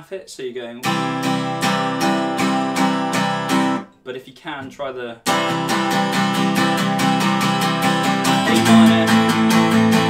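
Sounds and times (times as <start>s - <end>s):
acoustic guitar strumming: 0.8s - 4.0s, 5.3s - 10.0s.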